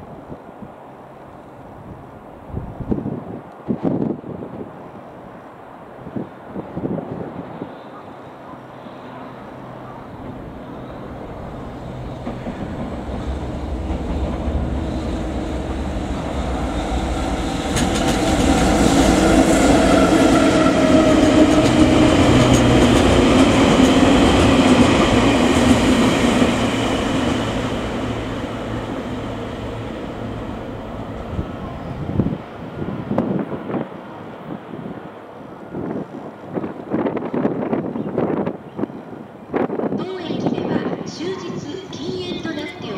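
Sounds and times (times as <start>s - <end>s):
freight train rumbling past: 0.0s - 42.9s
train wheels clicking over rail joints: 17.6s - 18.8s, 21.3s - 25.8s.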